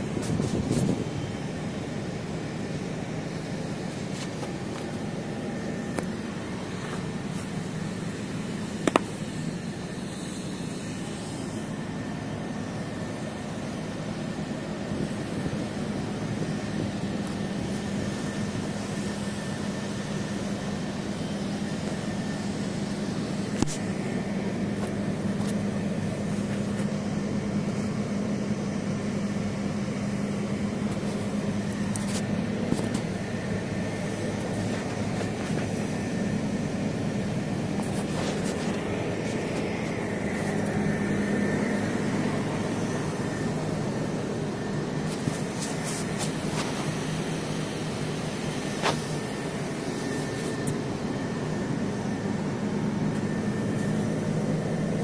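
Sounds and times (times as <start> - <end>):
machine hum: 0.0 - 55.0.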